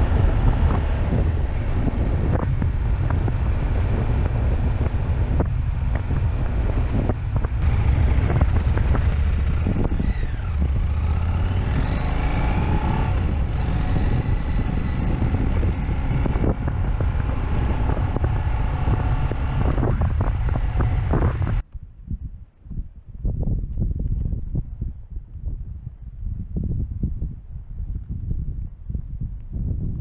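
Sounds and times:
motorcycle engine: 0.0 - 21.6
wind buffeting microphone: 0.0 - 30.0
tyres on loose dirt: 7.6 - 19.8.

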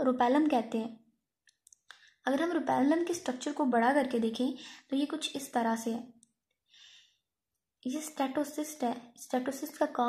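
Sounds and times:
woman speaking: 0.0 - 1.0, 2.3 - 6.1, 7.9 - 10.0
faint intake of breath: 6.7 - 7.2.

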